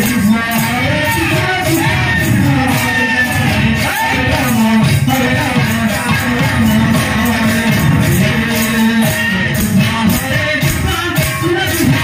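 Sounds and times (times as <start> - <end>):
devotional singing: 0.0 - 12.0
steady percussion beat: 0.0 - 12.0.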